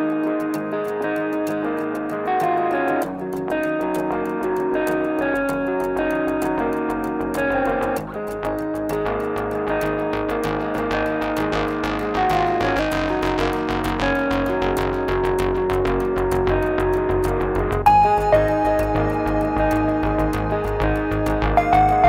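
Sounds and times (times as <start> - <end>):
guitar-led instrumental music: 0.0 - 22.0.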